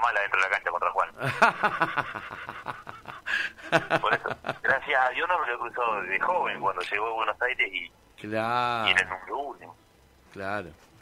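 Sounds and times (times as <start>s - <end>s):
person speaking: 3.7s - 10.8s.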